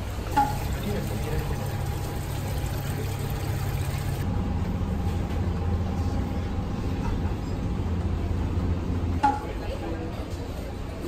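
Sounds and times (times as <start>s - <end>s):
refrigerator and ventilation hum: 0.0s - 11.0s.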